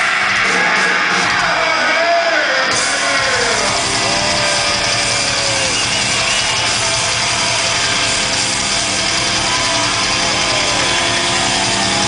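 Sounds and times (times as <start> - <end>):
live metal band playing: 0.0 - 12.0.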